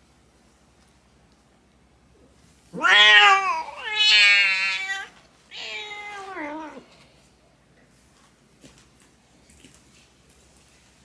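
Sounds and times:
cat crying loudly: 2.8s - 6.8s.

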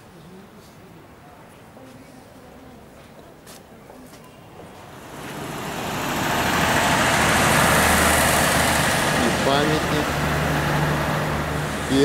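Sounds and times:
car engine and tyre noise: 4.6s - 12.0s.

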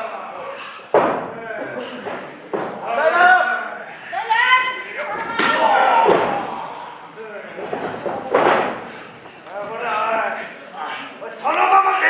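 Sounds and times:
people shouting: 2.8s - 8.4s.

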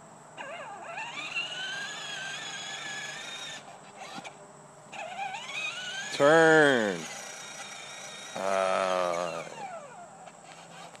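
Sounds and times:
electric motor whine of toy: 0.4s - 11.0s.

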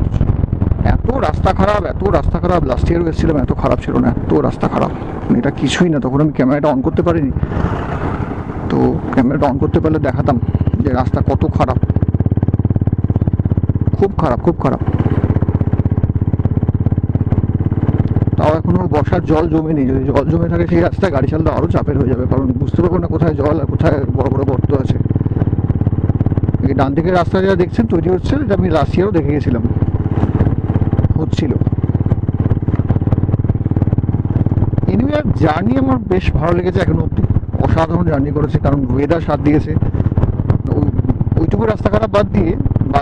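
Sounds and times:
motorcycle engine running: 0.0s - 43.0s.

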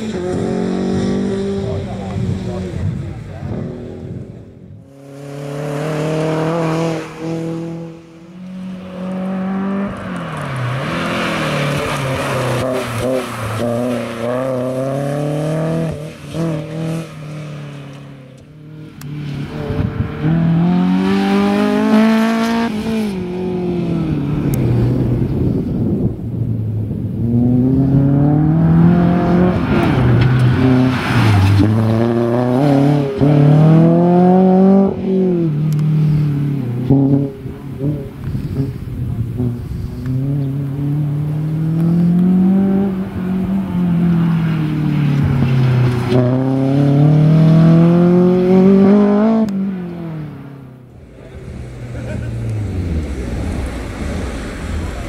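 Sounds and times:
race car engine revving past: 0.0s - 25.4s, 27.1s - 55.0s.

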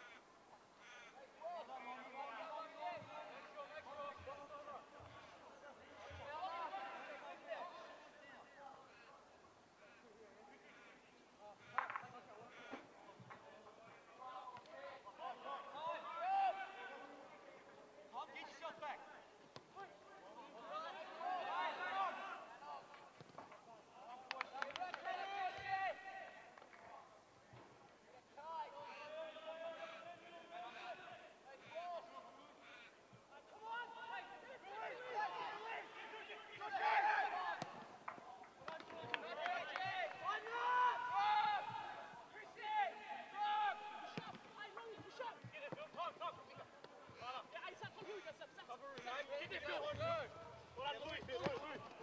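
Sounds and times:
players shouting calls: 11.5s - 17.4s, 18.2s - 23.2s, 23.8s - 26.7s, 28.3s - 52.0s
men shouting calls: 28.5s - 37.6s, 39.0s - 46.5s.

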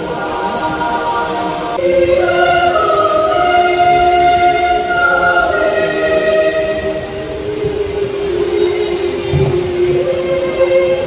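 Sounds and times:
choir singing long chords: 0.0s - 11.0s.

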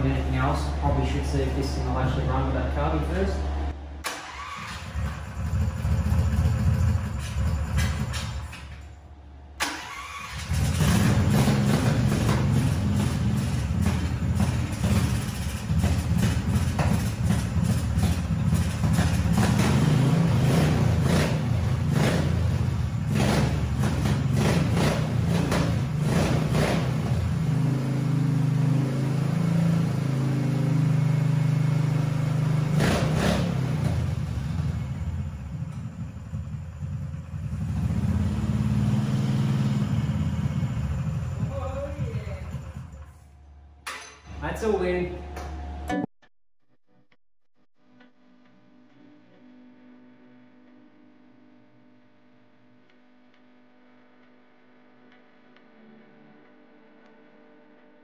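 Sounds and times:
engine revving and idling: 0.0s - 8.9s, 9.5s - 43.8s
engine cranking: 9.6s - 19.8s.

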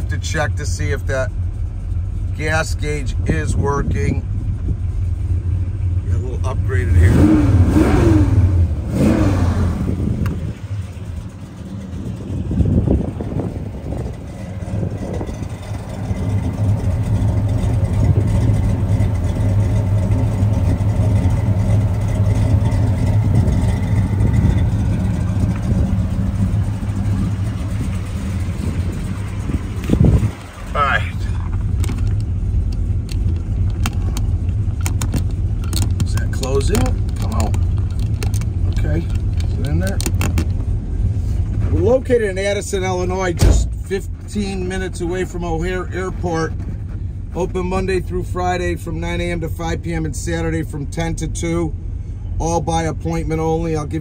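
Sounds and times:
car engine idling: 0.0s - 54.0s
engine of moving car: 0.0s - 54.0s.

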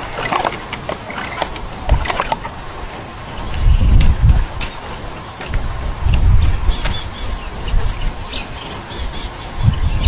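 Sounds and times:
small birds chirping: 3.2s - 10.0s.

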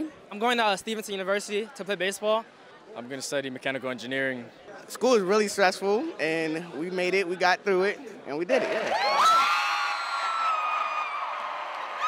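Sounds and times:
crowd cheering: 8.6s - 12.0s
high-pitched screams and whoops: 8.9s - 12.0s.

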